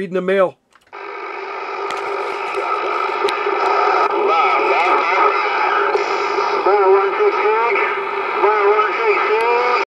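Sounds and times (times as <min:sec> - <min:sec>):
radio static: 0:00.9 - 0:09.9
garbled radio voices: 0:01.0 - 0:09.9.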